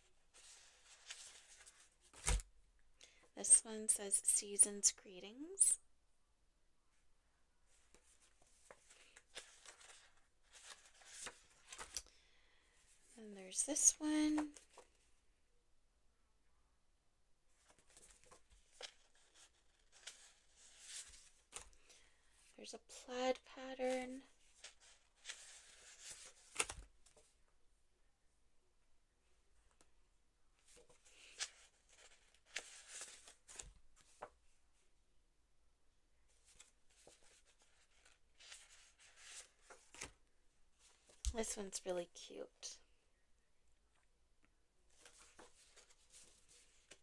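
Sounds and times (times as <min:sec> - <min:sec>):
paper sheets rustling and sliding: 0:00.3 - 0:02.4, 0:08.0 - 0:12.0, 0:17.7 - 0:21.6, 0:24.6 - 0:26.8, 0:30.8 - 0:34.3, 0:36.5 - 0:40.1.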